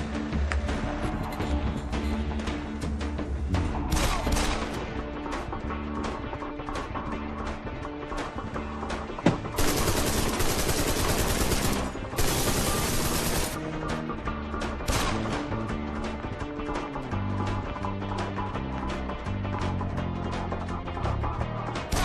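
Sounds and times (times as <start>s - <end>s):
background music with beat: 0.0s - 22.0s
automatic gunfire: 9.6s - 13.6s, 14.9s - 15.4s.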